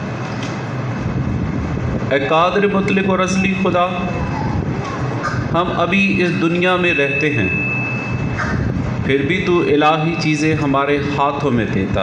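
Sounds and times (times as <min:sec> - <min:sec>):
steady rumbling: 0:00.0 - 0:12.0.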